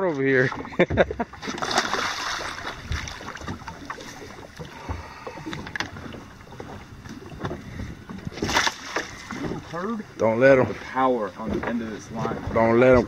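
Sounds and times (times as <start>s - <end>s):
water splashing: 0.1s - 13.0s
wash of water: 1.4s - 5.1s.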